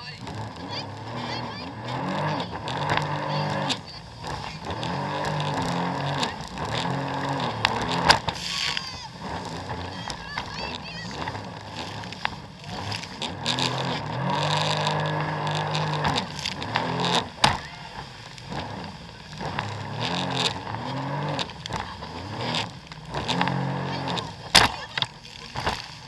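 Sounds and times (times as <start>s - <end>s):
hull slapping waves: 0.0s - 26.0s
jet ski engine revving: 0.0s - 26.0s
spray and wind noise: 7.6s - 13.2s.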